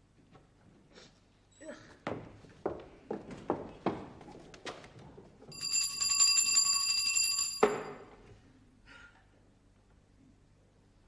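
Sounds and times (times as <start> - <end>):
brass handbell ringing: 5.5 - 8.0.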